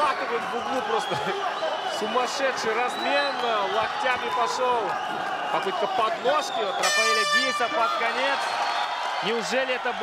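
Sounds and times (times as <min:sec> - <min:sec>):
arena horn sounding: 0:06.8 - 0:07.9.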